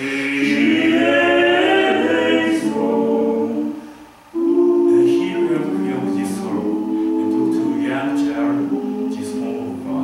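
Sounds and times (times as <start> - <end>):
male quartet singing a cappella: 0.0 - 10.0.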